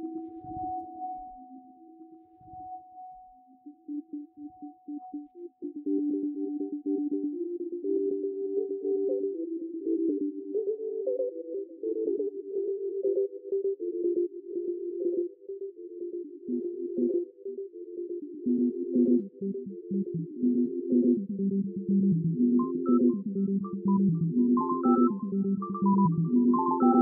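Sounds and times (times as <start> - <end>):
pulsing electronic sine tones: 22.4 - 27.0.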